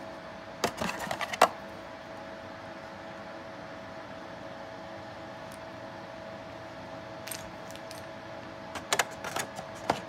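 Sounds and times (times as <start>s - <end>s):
plastic tray clicking and rattling: 8.8s - 10.0s.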